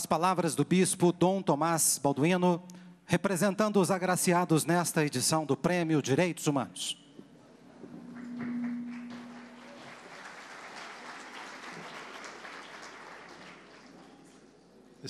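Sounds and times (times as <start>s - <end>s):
steady hum: 7.8s - 10.2s
audience applauding: 8.1s - 14.4s.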